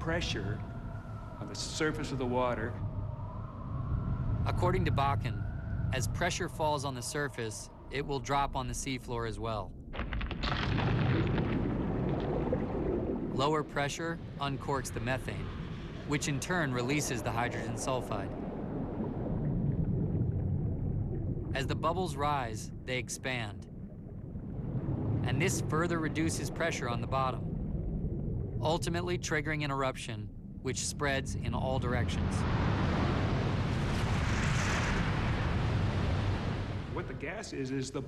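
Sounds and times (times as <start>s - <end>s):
low underwater rumble: 0.0s - 38.0s.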